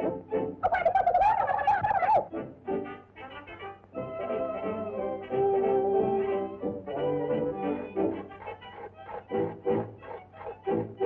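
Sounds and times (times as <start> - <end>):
cartoon soundtrack music: 0.0 - 11.0.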